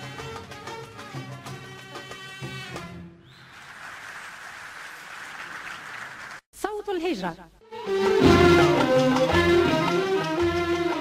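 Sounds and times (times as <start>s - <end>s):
music: 0.0s - 3.3s, 7.6s - 11.0s
audience applause: 3.5s - 6.4s.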